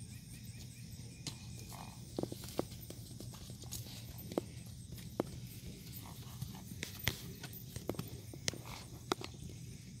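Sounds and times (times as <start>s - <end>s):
horse hoofbeats on grass: 0.0s - 9.7s.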